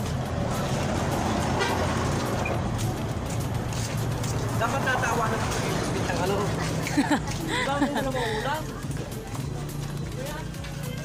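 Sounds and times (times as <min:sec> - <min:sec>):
flip-flops slapping on concrete: 0:00.0 - 0:11.0
faint voices: 0:04.5 - 0:11.0.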